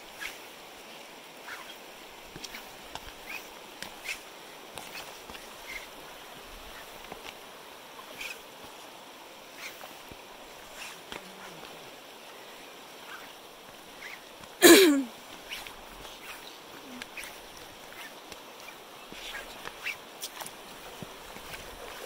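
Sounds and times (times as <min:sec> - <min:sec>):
river running over rocks: 0:00.0 - 0:22.0.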